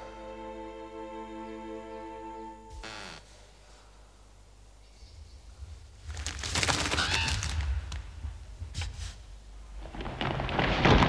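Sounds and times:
thunderclap crackling: 5.4s - 11.0s.

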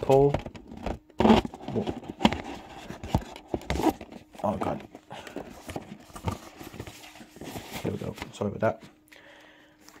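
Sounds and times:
box set handling knocks and rustles: 0.0s - 8.9s.

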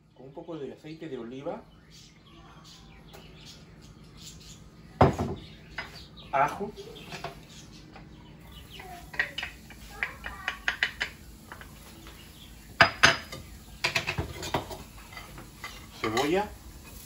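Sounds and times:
kitchenware clinking and knocking: 5.0s - 6.0s, 9.0s - 11.8s, 12.8s - 16.5s.

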